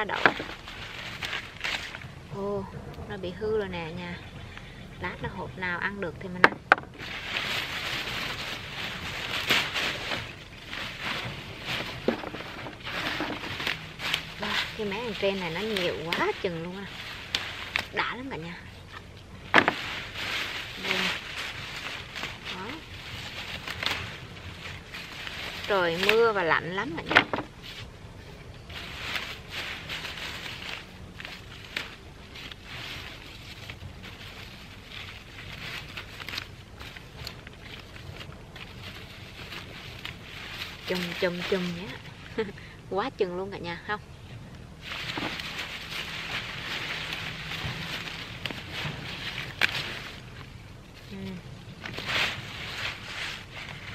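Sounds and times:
rustling bean vines and leaves: 0:00.0 - 0:53.9.

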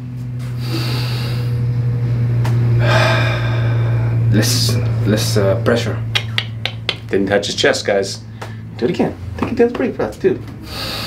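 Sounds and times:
steady low hum: 0:00.0 - 0:11.0
man breathing deeply: 0:00.4 - 0:04.4, 0:08.2 - 0:08.8, 0:10.6 - 0:11.0.

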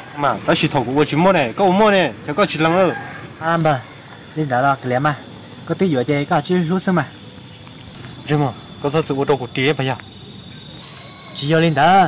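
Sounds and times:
high-pitched insect drone: 0:00.0 - 0:12.0
men talking: 0:00.0 - 0:12.0.

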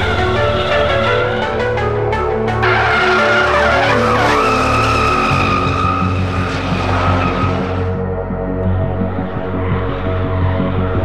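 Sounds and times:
background music: 0:00.0 - 0:11.0
car engine running hard: 0:00.0 - 0:11.0
tyres screeching: 0:02.4 - 0:07.9.

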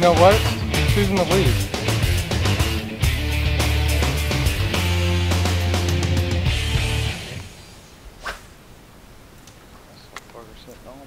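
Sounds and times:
fishing rod swishing through air: 0:08.1 - 0:08.6.

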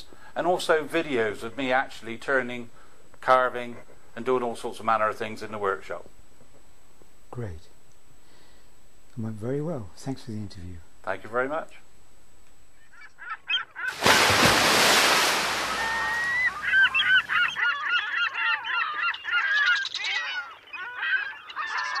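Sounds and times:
birds honking and squawking: 0:15.6 - 0:22.0.

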